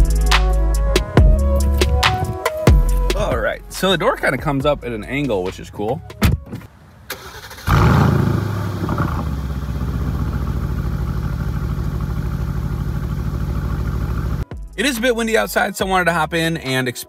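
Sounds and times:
car engine starting and idling: 7.0s - 14.5s.

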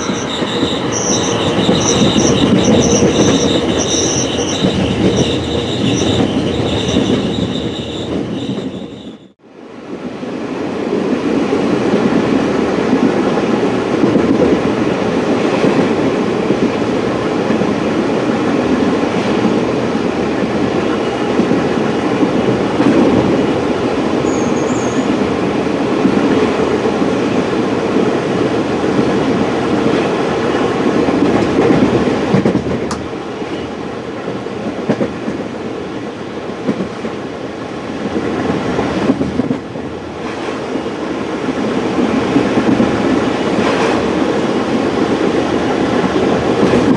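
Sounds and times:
train wheels rolling on rails: 0.0s - 9.4s, 10.0s - 46.9s.

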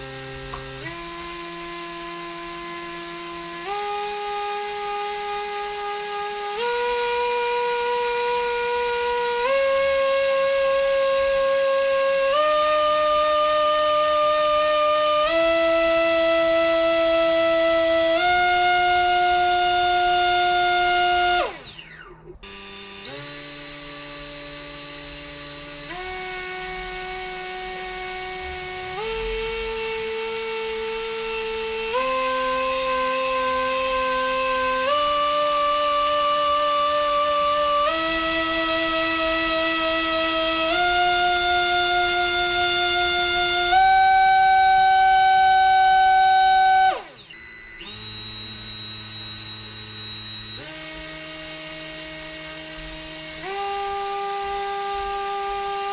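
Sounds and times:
drone motor high-pitched whine: 0.0s - 55.9s.

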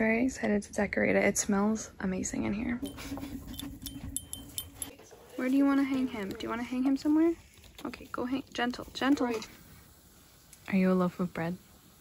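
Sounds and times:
dog collar tags clinking: 2.8s - 5.0s.

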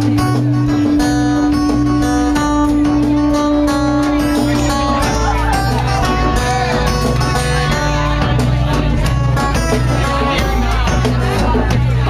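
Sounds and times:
live band music with guitar: 0.0s - 12.0s
repeating bass line: 0.0s - 12.0s.

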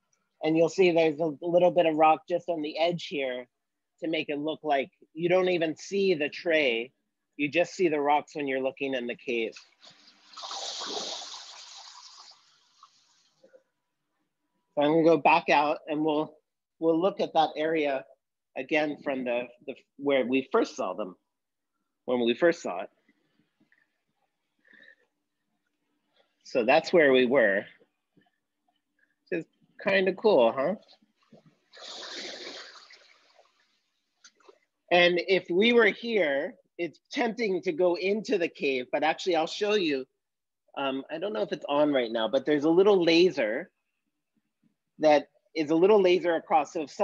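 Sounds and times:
water gushing and splashing: 9.8s - 13.4s, 31.3s - 33.8s.

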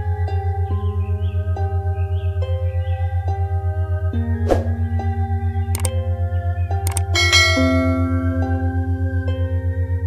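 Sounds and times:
low pulsing drone: 0.0s - 10.0s
synth background music: 0.0s - 10.0s
bright bell chime: 6.9s - 8.2s.

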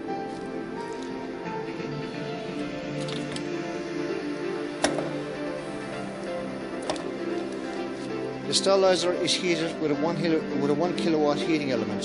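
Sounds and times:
background music with steady tones: 0.0s - 12.0s.

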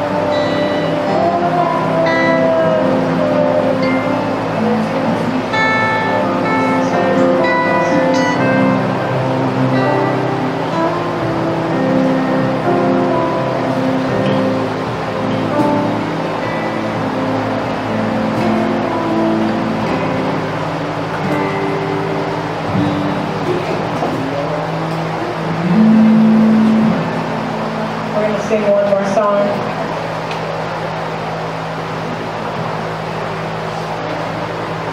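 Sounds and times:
women singing into microphones: 0.0s - 7.3s
acoustic guitar strumming: 0.0s - 34.9s.

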